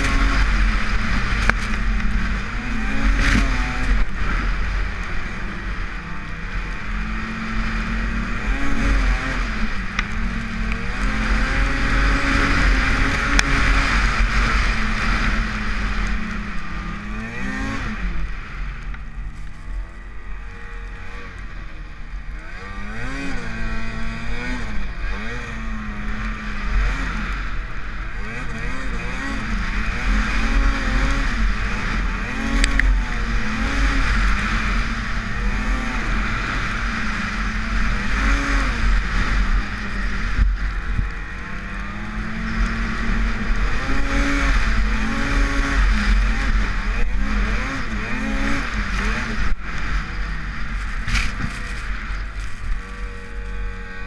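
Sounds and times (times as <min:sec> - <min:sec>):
snowmobile engine revving: 0:00.0 - 0:54.0.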